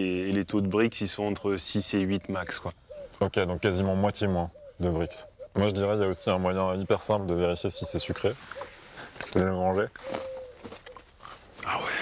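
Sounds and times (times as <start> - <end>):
crunching and chewing: 10.0 - 11.7
person speaking: 11.6 - 12.0.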